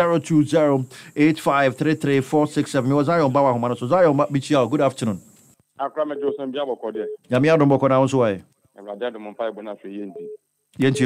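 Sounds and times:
voice over telephone line: 0:05.8 - 0:07.9, 0:08.8 - 0:11.0.

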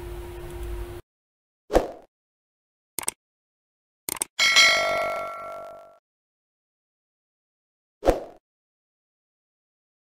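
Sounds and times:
notification bell chime: 0:04.4 - 0:06.0.

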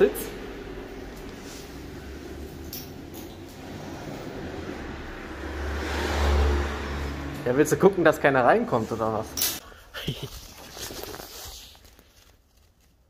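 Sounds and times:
low rumble of passing vehicle: 0:00.0 - 0:09.4.

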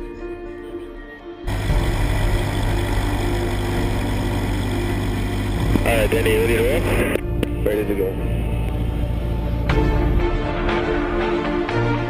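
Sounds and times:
background music: 0:00.0 - 0:12.0
light aircraft piston engine running: 0:01.5 - 0:09.8.

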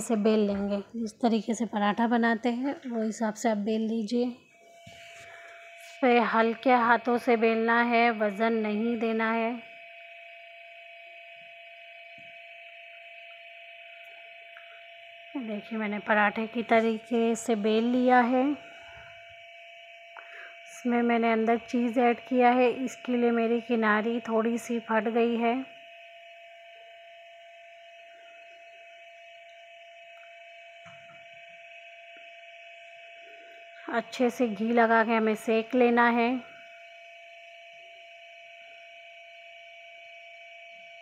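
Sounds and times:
faint room tone hum: 0:00.0 - 0:41.0.

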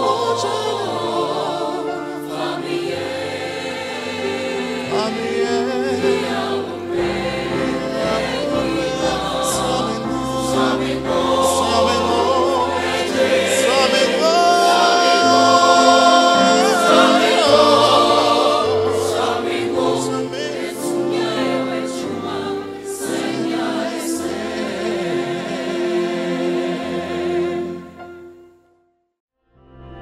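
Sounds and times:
mixed choir singing in parts: 0:00.0 - 0:28.0.

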